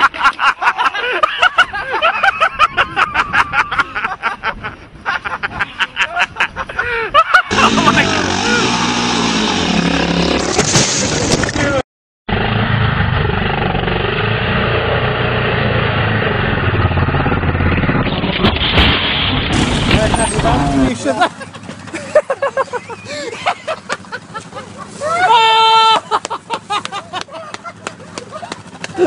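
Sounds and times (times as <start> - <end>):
loud voices: 7.5 - 10.4
dirt bike engine running: 7.5 - 11.2, 12.3 - 18.7, 26.2 - 29.0.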